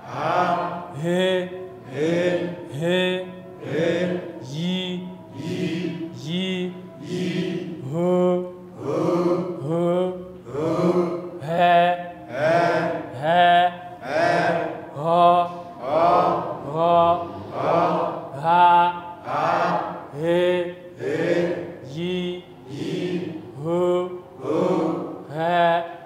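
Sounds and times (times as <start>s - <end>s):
voices chanting vowels: 0.0s - 26.0s.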